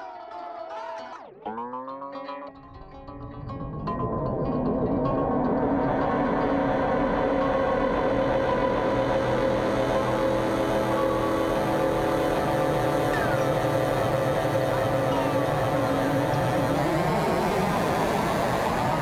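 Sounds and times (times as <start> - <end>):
ambient drone of held tones: 0.0 - 19.0
noisy wash: 2.9 - 19.0.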